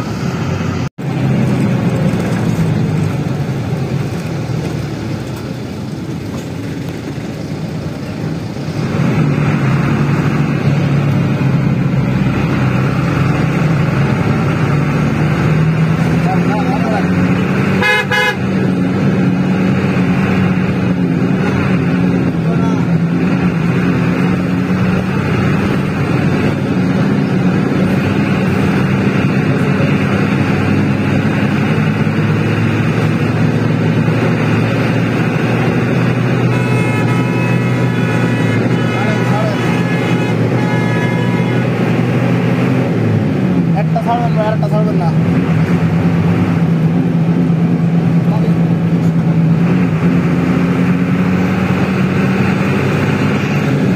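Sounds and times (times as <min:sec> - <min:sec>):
bus engine pulling hard: 0:00.0 - 0:53.9
short horn blast: 0:17.8 - 0:18.5, 0:36.3 - 0:42.1.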